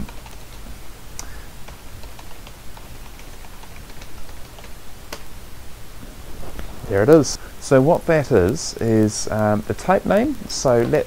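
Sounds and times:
typing on computer keyboard: 0.0 - 0.6, 1.7 - 5.2.

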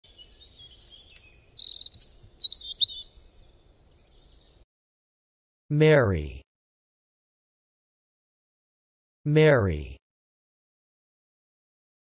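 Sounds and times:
bird trill: 0.1 - 4.6
birds chirping and whistling: 0.1 - 4.6.

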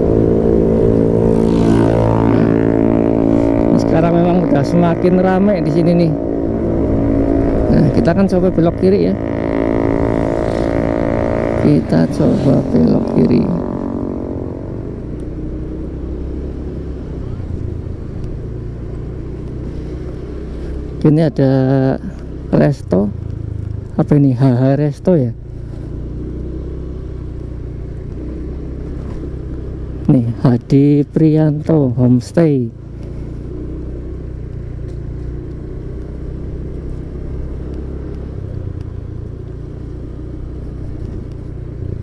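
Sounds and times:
motorcycle engine droning: 0.0 - 42.0.

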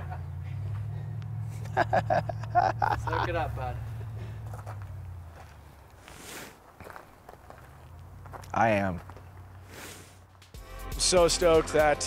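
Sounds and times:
footsteps on gravel: 3.2 - 10.4
scraping swish: 9.6 - 10.2.

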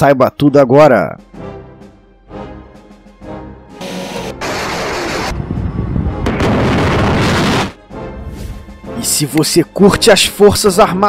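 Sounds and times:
gunfire: 4.4 - 5.4, 6.2 - 7.8
explosions with low rumble: 4.4 - 7.8.

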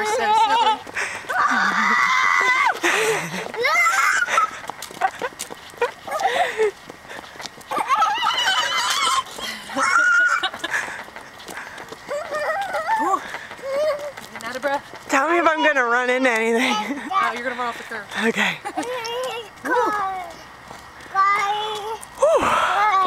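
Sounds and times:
toddler squealing: 7.7 - 10.6.

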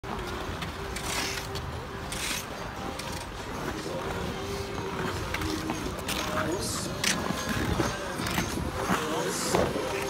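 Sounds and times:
skaters' voices: 0.2 - 10.0
ice skate blades scraping: 0.9 - 10.0.

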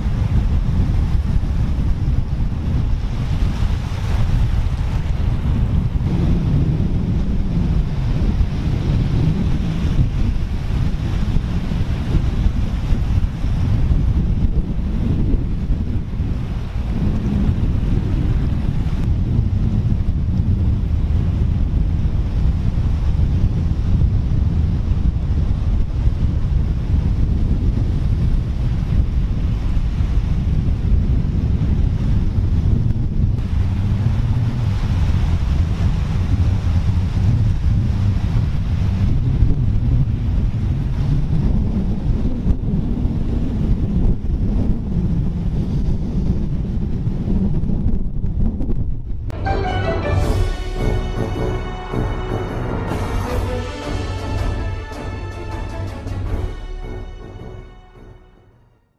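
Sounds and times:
surf washing onto beach: 0.0 - 30.9, 33.4 - 42.2
wind buffeting microphone: 0.0 - 49.4.

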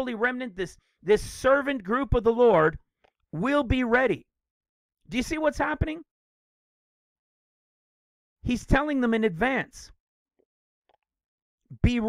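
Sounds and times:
man talking: 0.0 - 2.8, 3.4 - 4.2, 5.1 - 6.0, 8.5 - 10.0, 11.7 - 12.0.

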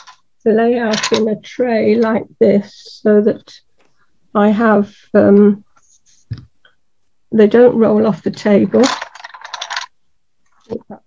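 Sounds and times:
coloured pencils clicking and rattling: 0.0 - 2.2, 7.5 - 10.8.

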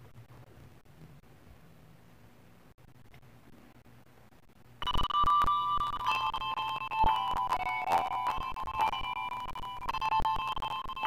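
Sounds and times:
handbell ensemble playing: 5.2 - 11.0.

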